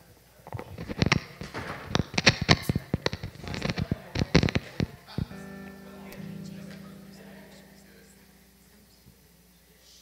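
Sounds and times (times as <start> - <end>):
microphone handling knocks and pops: 0.6 - 5.3.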